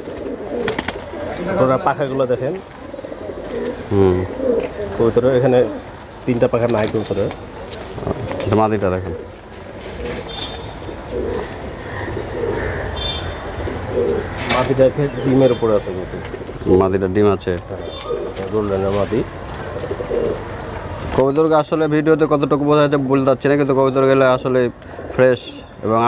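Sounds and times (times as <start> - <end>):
pigeons cooing: 0.0 - 26.0.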